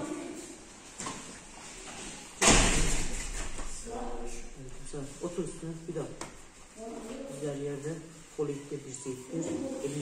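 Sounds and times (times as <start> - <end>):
loud thud: 2.4 - 3.3.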